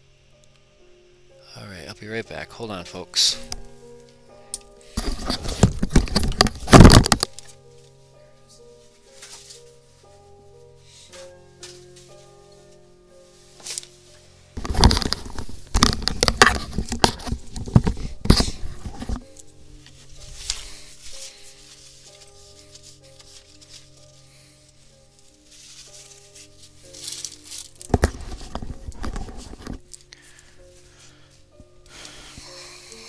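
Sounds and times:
calm background music: 0:00.0 - 0:33.0
paper towel crumpling: 0:13.4 - 0:29.9.

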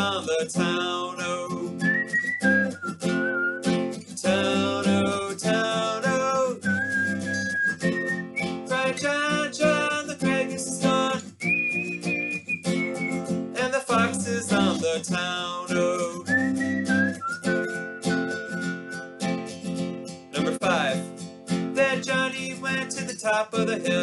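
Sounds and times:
man singing folk song: 0:00.0 - 0:19.4, 0:20.1 - 0:24.0
strummed acoustic guitar: 0:00.0 - 0:24.0.

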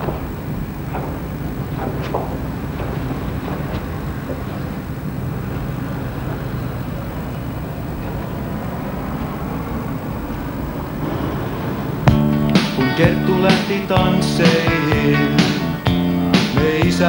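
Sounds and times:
faint hum: 0:00.0 - 0:17.0.

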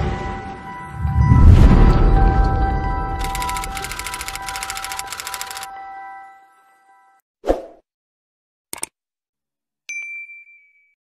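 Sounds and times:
bell-like ding: 0:00.0 - 0:04.7, 0:09.9 - 0:11.0
click: 0:08.7 - 0:08.9.

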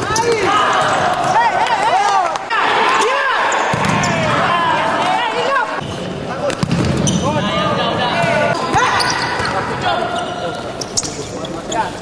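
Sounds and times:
shoes squeaking on court floor: 0:05.8 - 0:07.5, 0:08.2 - 0:12.0.

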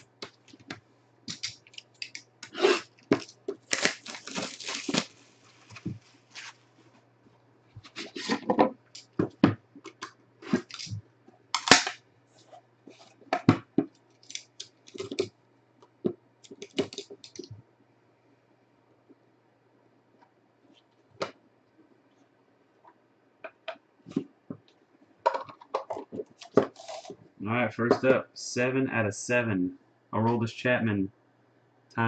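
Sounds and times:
packaging tearing and rustling: 0:01.3 - 0:06.7, 0:10.5 - 0:10.9, 0:14.2 - 0:15.3, 0:26.4 - 0:27.1.

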